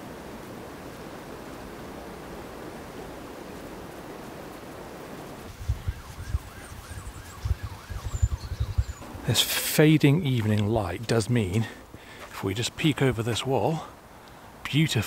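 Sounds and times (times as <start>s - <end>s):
distant wavering siren: 4.0s - 9.4s.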